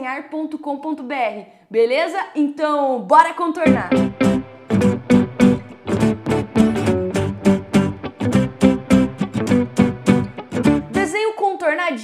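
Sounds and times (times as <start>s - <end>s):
plucked strings music: 3.6s - 11.2s.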